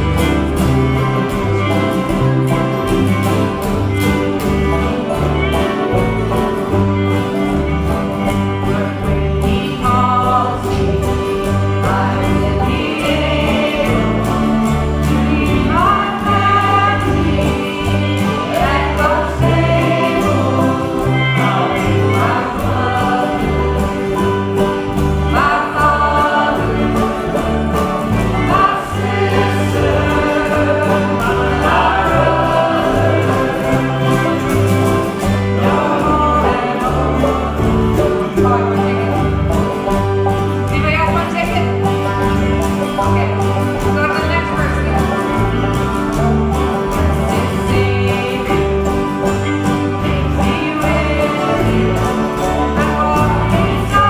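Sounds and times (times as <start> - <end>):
acoustic folk band playing: 0.0 - 54.0
woman singing: 8.8 - 10.9, 11.7 - 14.5, 15.1 - 23.6, 47.5 - 49.0, 50.0 - 51.8.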